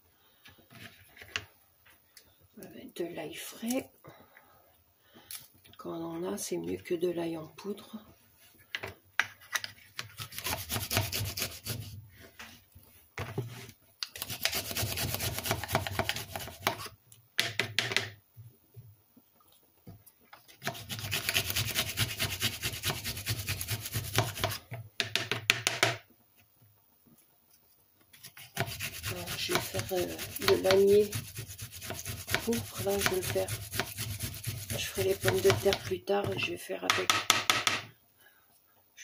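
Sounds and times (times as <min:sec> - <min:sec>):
garlic rasping on hand grater: 0:10.2 - 0:11.9, 0:14.2 - 0:16.9, 0:20.6 - 0:24.6, 0:28.2 - 0:35.9.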